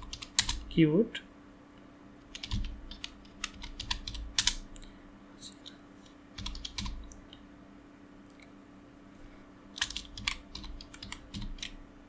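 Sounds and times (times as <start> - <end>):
keyboard typing: 0.0 - 0.7, 2.3 - 4.9, 6.4 - 7.4, 9.8 - 11.8
faint steady hum: 0.0 - 12.0.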